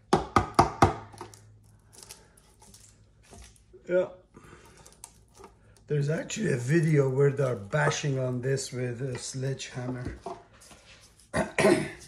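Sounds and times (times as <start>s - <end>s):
handling and rustling: 4.6s - 11.4s.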